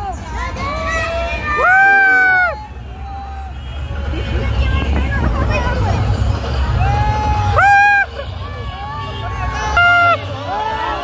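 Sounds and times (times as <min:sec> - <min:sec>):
crowd chattering and calling out: 0:00.0 - 0:11.0
low rumble of slow cars: 0:00.0 - 0:11.0.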